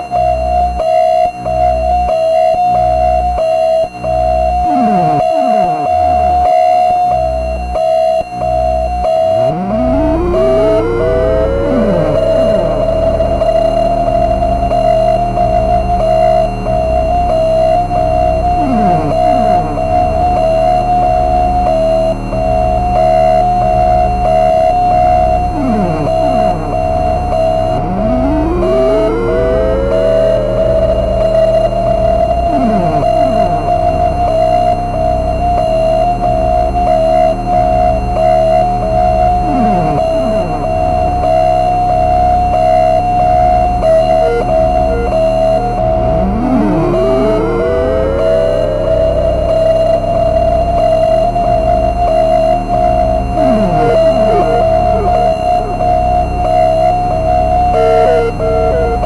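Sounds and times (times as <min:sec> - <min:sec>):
pulsing high oscillator tone: 0:00.2 - 0:59.0
pulsing low bass: 0:01.4 - 0:59.0
swooping pitch glides: 0:04.6 - 0:06.5, 0:09.3 - 0:16.5, 0:17.4 - 0:20.9, 0:25.2 - 0:31.2, 0:32.2 - 0:34.8, 0:43.4 - 0:50.6, 0:52.6 - 0:59.0.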